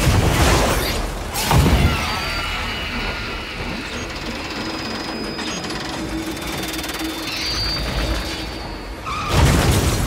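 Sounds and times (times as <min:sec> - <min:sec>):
mechanical grinding rumble: 0:02.8 - 0:09.0.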